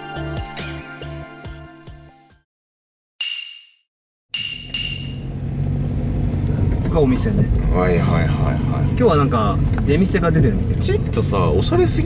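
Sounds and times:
background music: 0.0 - 2.4
car driving rumble inside cabin: 5.1 - 12.0.

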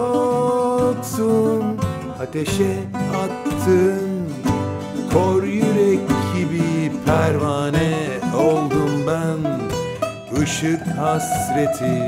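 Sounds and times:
acoustic guitar strummed: 0.0 - 12.0
bouzouki picked: 0.0 - 12.0.

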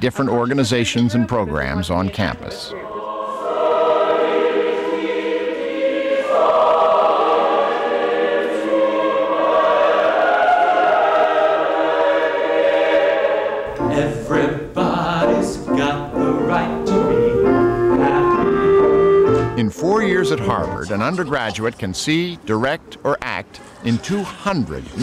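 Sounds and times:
mixed choir singing: 2.1 - 19.4
band music with keyboard: 13.7 - 21.0.

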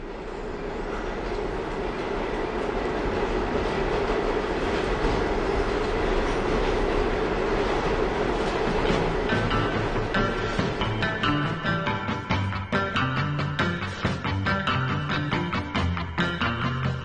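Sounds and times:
train wheels rumbling on rails: 0.0 - 17.0.

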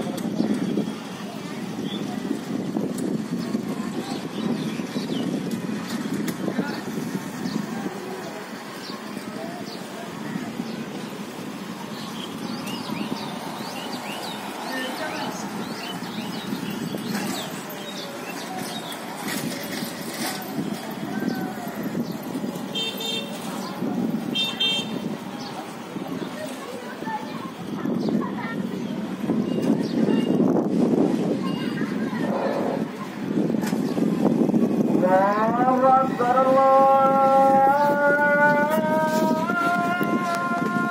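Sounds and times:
distant voices murmuring: 0.0 - 40.9
street noise: 0.0 - 40.9
small birds chirping: 11.9 - 19.0.

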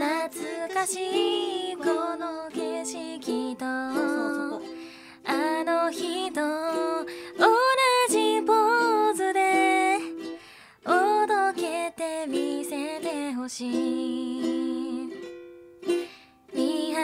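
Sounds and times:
woman singing with vibrato: 0.0 - 15.2, 16.6 - 17.0
ukulele: 0.0 - 17.0.

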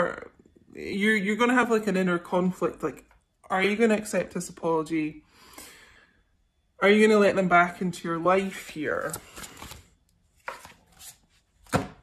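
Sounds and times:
cards rustling: 8.6 - 11.8.

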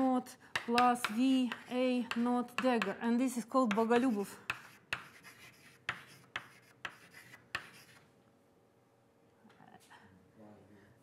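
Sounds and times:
chalk tapping on blackboard: 0.5 - 3.0, 3.6 - 8.0
chalk scratching on blackboard: 3.7 - 8.0.

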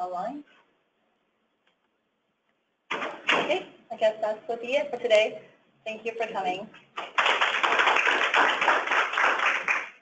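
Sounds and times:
audience applauding: 7.0 - 10.0.

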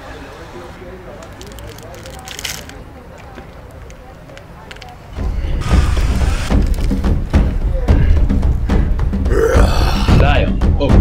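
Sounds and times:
wrapper crinkling and tearing: 1.2 - 2.8.

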